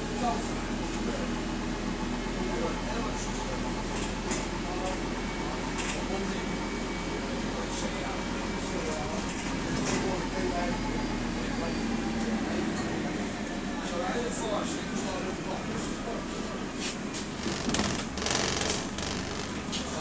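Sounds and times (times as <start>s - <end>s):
bus engine and road hum: 3.6s - 6.2s, 8.5s - 10.4s, 12.0s - 20.0s
sharp rattles: 17.4s - 19.7s.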